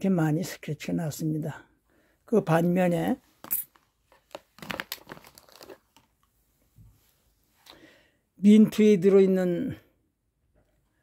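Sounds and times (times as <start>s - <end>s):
plastic case crinkling and clicking: 3.7s - 6.3s.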